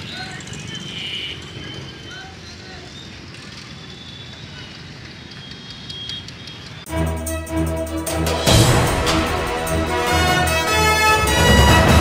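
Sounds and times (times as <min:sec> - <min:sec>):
distant indistinct voices: 0:00.0 - 0:06.8
loud theme music: 0:06.9 - 0:12.0.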